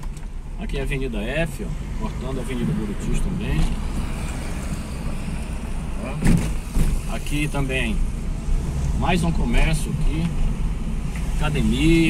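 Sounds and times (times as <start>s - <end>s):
car road and engine rumble: 0.0s - 12.0s
road hiss: 1.2s - 12.0s.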